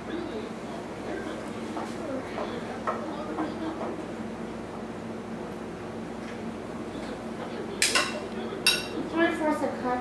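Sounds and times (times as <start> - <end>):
metal kitchenware clinking: 7.8 - 9.0.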